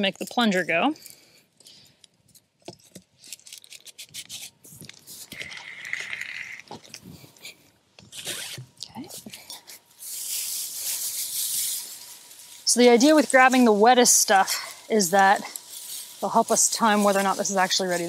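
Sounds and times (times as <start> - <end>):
dry hay rustling and crunching: 9.2 - 18.0.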